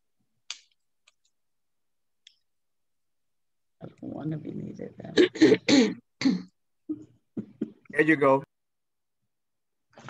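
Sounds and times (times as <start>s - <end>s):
woman clearing her throat: 5.2s - 7.8s.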